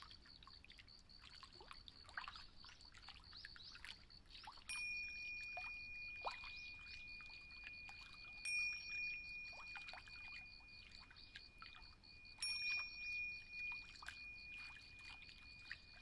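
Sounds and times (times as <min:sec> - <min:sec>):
faint trickling sounds: 0:00.0 - 0:16.0
small cymbals ringing: 0:04.7 - 0:16.0.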